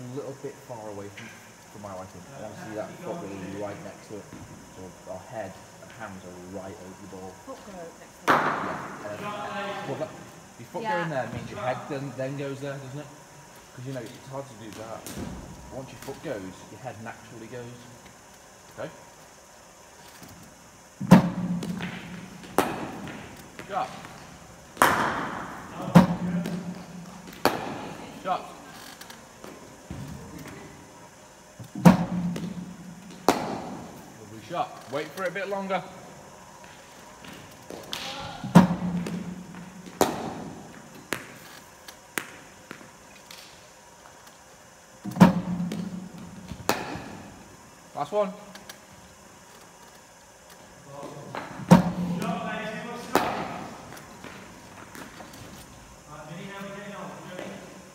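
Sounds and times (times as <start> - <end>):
cricket bat hitting ball: 8.2 - 9.0, 21.0 - 23.3, 24.8 - 28.0, 31.8 - 34.0, 37.8 - 41.4, 45.1 - 47.3, 53.0 - 53.9.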